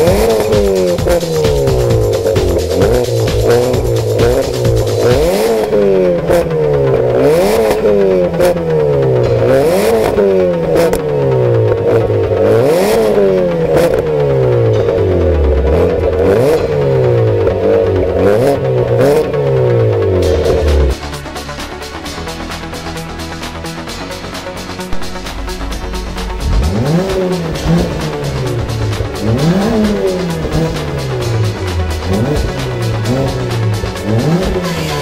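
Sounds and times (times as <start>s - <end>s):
car engine revving: 0.0s - 35.0s.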